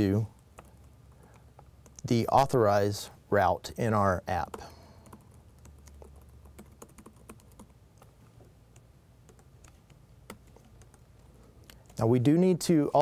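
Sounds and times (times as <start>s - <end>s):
typing on computer keyboard: 4.4s - 8.1s, 8.7s - 11.1s.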